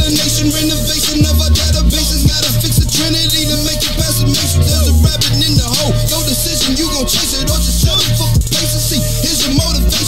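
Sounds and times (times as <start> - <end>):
heavy bass beat: 0.0 - 10.0
rapping: 0.0 - 10.0.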